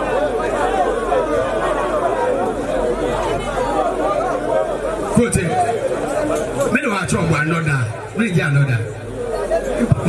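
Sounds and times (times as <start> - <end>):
babble of chatter: 0.0 - 10.0.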